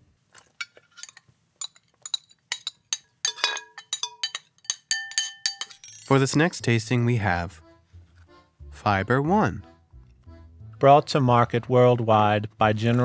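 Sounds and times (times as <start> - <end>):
clinks and taps on dishware: 1.0 - 6.1.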